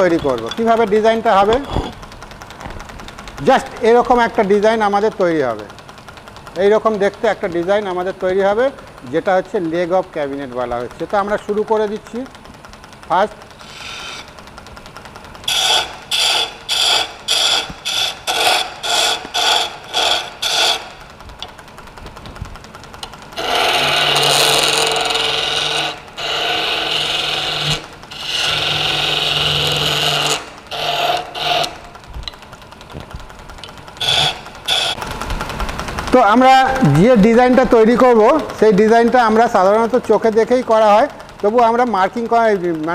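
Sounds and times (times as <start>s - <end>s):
lathe tool cutting wood: 0.0s - 2.0s, 13.1s - 21.2s, 23.4s - 32.0s, 33.9s - 42.9s
wood lathe running: 0.0s - 42.9s.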